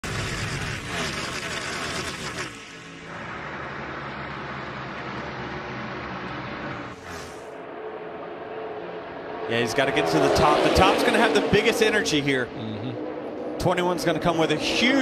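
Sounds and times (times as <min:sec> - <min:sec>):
whooshing effects: 0:06.8 - 0:07.7.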